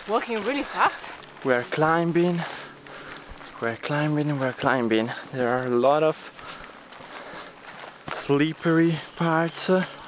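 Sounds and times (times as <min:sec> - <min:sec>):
footsteps on leaf litter: 0:00.0 - 0:10.0.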